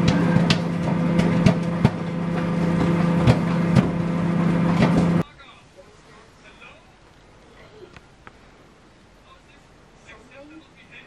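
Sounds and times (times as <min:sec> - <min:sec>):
microwave oven humming: 0:00.0 - 0:05.2
popcorn popping: 0:00.0 - 0:05.2.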